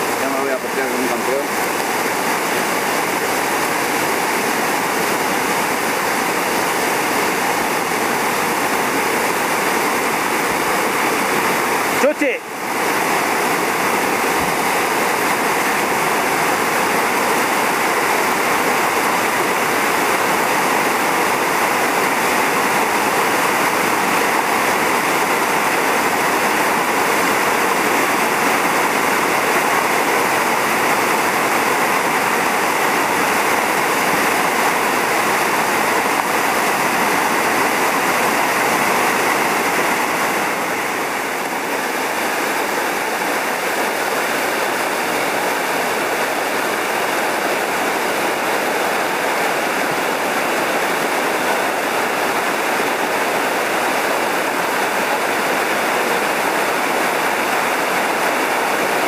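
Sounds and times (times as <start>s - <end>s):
whitewater river rushing over rocks: 0.0s - 59.0s.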